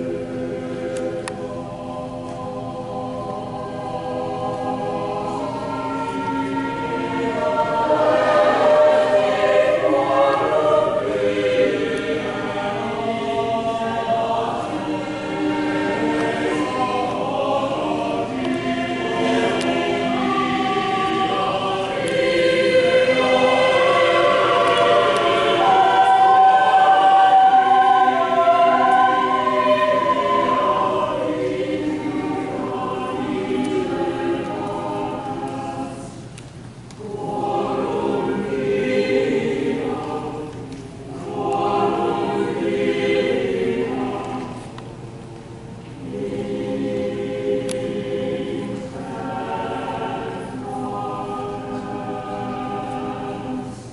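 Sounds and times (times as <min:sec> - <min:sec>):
congregation and choir singing hymn: 0:00.0 - 0:53.9.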